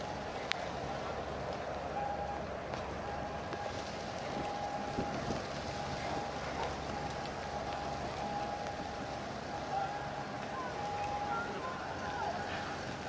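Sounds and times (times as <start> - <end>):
faint hum: 0.0 - 13.0
wind and water hiss: 0.0 - 13.0.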